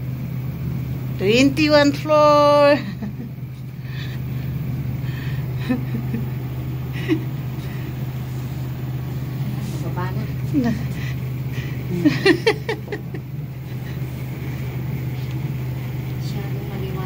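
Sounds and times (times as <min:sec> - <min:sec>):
elevator humming: 0:00.0 - 0:17.0.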